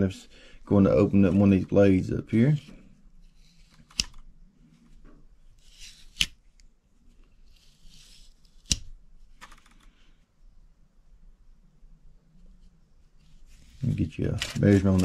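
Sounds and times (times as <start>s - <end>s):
soft handling noise: 0.0s - 8.6s, 12.3s - 15.0s.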